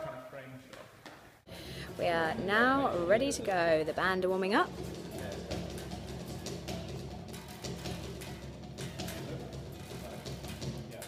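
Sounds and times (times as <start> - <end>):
band warming up: 1.5 - 11.0
drums: 1.5 - 11.0.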